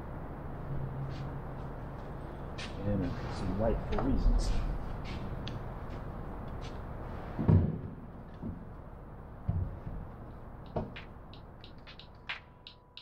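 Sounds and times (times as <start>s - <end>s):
music with ticking beat: 10.6s - 13.0s.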